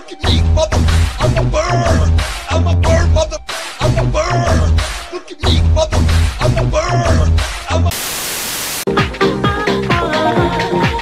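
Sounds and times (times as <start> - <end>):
music with heavy bass beat: 0.0 - 7.9, 8.9 - 11.0
static hiss: 7.9 - 8.9
disco music: 8.8 - 11.0.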